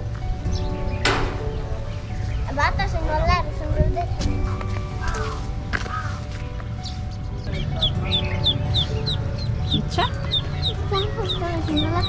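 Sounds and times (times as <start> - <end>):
background music: 0.0 - 12.0
bird chirping rapidly: 4.4 - 12.0.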